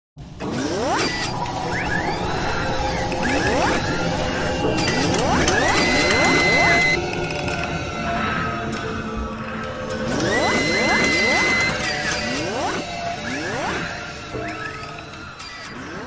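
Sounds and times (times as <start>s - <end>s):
steady mechanical bed: 0.2s - 16.0s
ratcheting clicks and whirs: 0.4s - 16.0s
rising servo-like whines: 0.4s - 16.0s.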